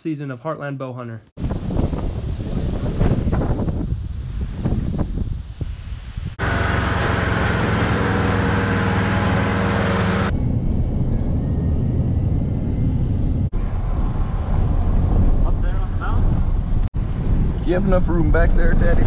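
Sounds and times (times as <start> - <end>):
truck engine drone: 6.4 - 18.6.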